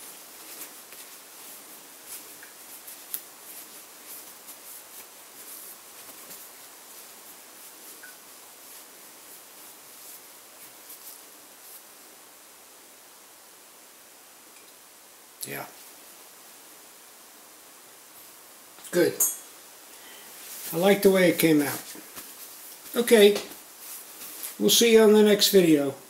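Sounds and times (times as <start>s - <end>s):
paper towel crinkling and rubbing: 0.0s - 12.0s, 20.3s - 25.5s
faint hiss: 0.0s - 26.0s.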